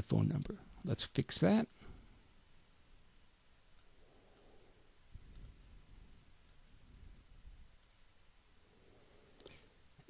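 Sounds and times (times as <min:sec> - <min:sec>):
computer mouse clicks: 0:05.2 - 0:05.6.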